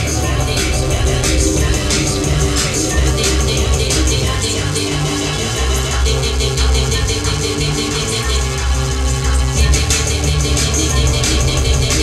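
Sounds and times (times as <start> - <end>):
deep bass line: 0.0 - 12.0
fast ticking beat: 0.0 - 12.0.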